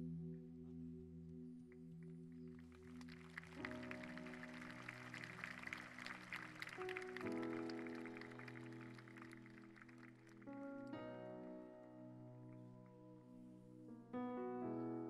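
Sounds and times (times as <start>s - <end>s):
soft sustained keyboard chords: 0.0s - 15.0s.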